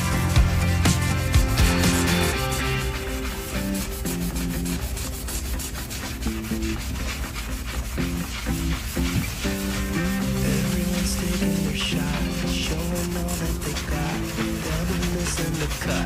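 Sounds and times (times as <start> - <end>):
background music with plucked notes: 0.0 - 4.8
cloth scrubbing wood surface: 0.0 - 16.0.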